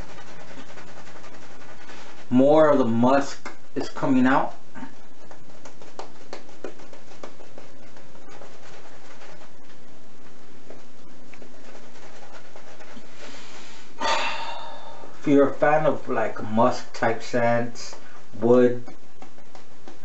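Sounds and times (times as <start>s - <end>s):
shaving brush swishing lather: 0.0s - 14.0s.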